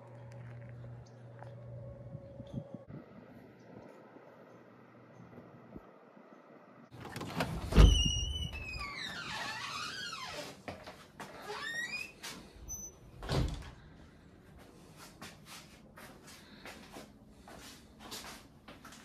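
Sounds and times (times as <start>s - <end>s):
door hinge squealing: 7.6s - 10.4s.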